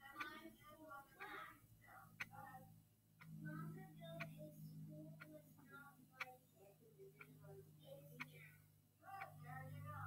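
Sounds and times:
low steady hum: 0.0s - 10.0s
mechanical timer ticking: 0.0s - 10.0s.

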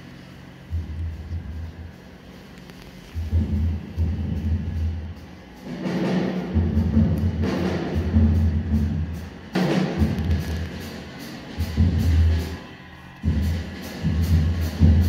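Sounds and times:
double bass notes: 0.0s - 5.4s
drums and cymbals: 0.0s - 15.0s.

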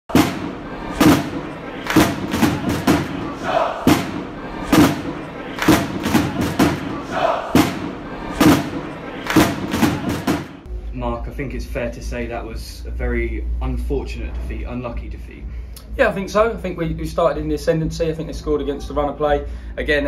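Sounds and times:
heavy thumping beat: 0.0s - 10.7s
stadium crowd noise: 0.1s - 10.7s
people shouting: 0.2s - 10.7s.

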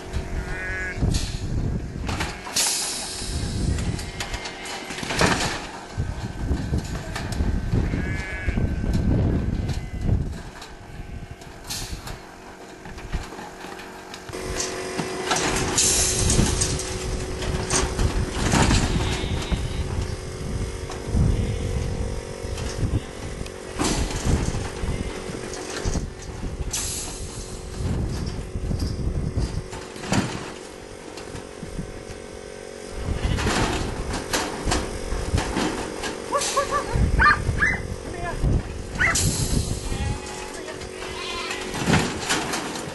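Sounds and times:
steady hum: 0.0s - 42.9s
sheep bleating: 0.3s - 1.0s, 7.7s - 9.0s, 39.8s - 41.8s
metal crate knocking and rattling: 41.6s - 42.9s.

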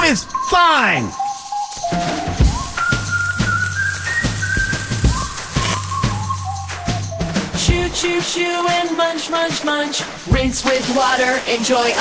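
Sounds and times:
high whistle-like melody: 0.2s - 7.6s
drum beat: 1.9s - 11.1s
bass: 2.4s - 8.0s.

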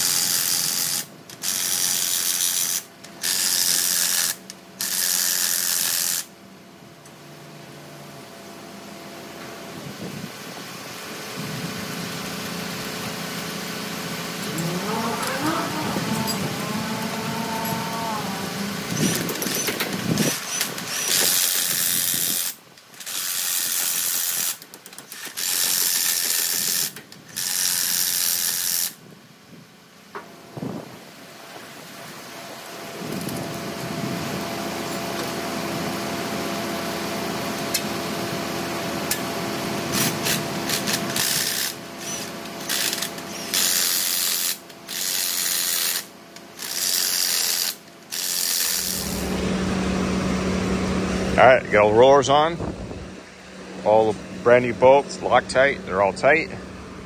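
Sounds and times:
impact wrench bursts: 0.0s - 6.3s, 18.8s - 29.0s, 39.1s - 49.4s
steady hum: 0.0s - 23.2s, 25.2s - 57.0s.

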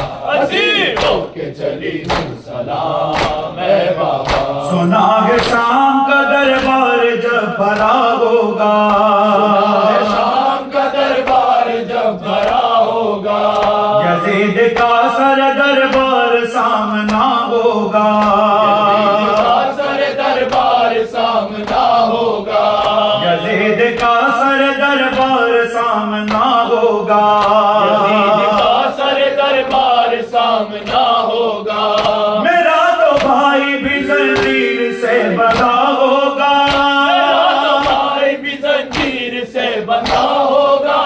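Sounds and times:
hands slapping chests: 0.0s - 1.3s, 2.0s - 2.4s, 3.1s - 3.5s, 4.1s - 4.6s, 5.3s - 5.7s, 6.5s - 6.8s, 7.7s - 8.1s, 11.0s - 11.6s, 12.3s - 13.9s, 18.2s - 18.4s, 19.3s - 19.7s, 20.4s - 20.8s, 21.6s - 23.1s, 26.3s - 26.6s, 27.4s - 27.6s, 30.8s - 32.3s, 33.1s - 33.4s, 34.4s - 34.6s, 35.5s - 35.9s, 36.6s - 37.0s, 37.7s - 39.3s, 39.9s - 40.6s
men chanting a lament: 0.0s - 41.0s
man singing a mourning elegy: 4.6s - 10.0s, 13.8s - 19.4s, 23.1s - 28.6s, 32.4s - 37.7s.

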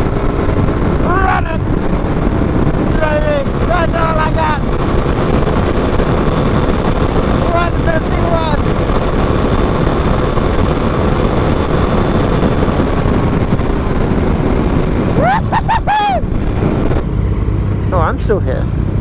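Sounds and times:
motorcycle engine running: 0.0s - 19.0s
wind rushing over microphone: 0.0s - 19.0s.

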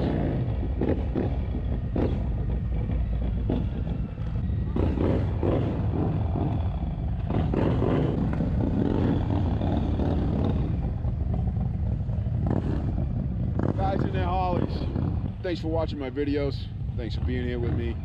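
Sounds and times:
motorcycle engine running: 0.0s - 18.0s
steady low noise: 0.0s - 18.0s.

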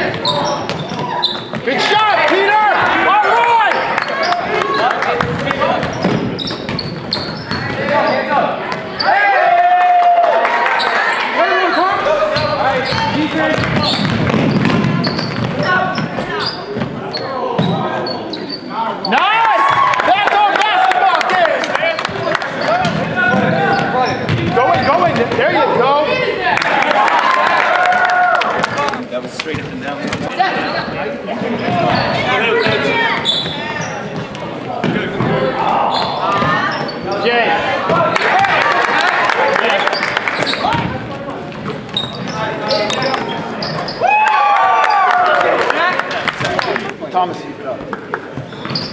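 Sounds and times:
echoing voices: 0.0s - 48.9s
basketball bouncing on hardwood: 12.4s - 16.1s.

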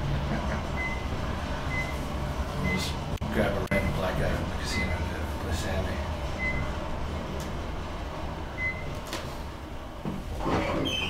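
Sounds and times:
elevator rumble: 0.0s - 11.0s.

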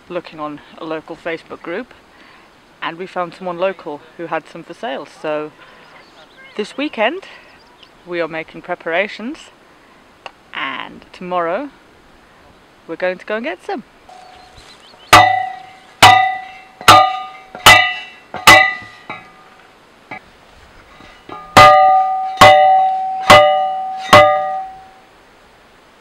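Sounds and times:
post driver ringing metallic clangs: 15.1s - 19.5s, 21.3s - 25.0s.

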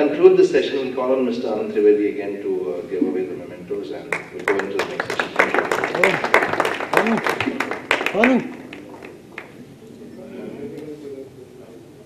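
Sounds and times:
audience applauding: 4.1s - 9.6s.

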